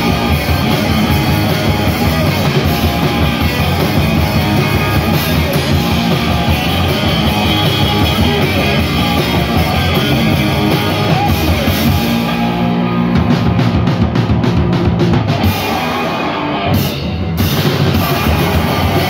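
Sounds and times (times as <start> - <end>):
distorted electric guitars: 0.0 - 19.0
pounding drum kit: 0.0 - 19.0.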